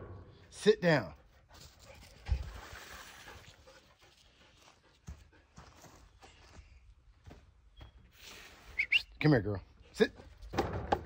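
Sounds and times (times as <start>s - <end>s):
dog panting: 3.3s - 6.0s.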